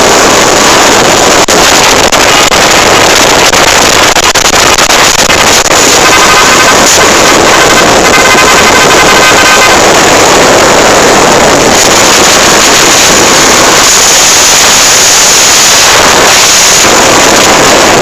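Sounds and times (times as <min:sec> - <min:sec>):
road noise: 0:00.0 - 0:18.0
wind rush on microphone: 0:00.0 - 0:18.0.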